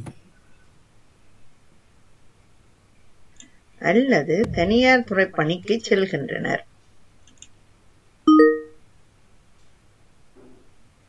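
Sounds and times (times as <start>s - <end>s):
recorded voice reading: 3.8s - 6.6s
electronic notification chime: 8.3s - 8.8s.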